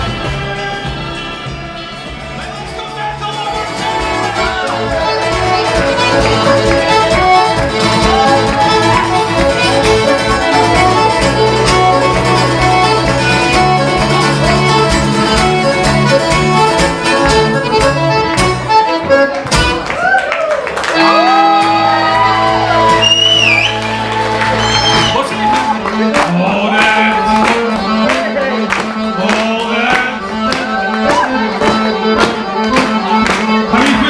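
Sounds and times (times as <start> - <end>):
accordion: 0.0 - 20.0, 20.8 - 34.0.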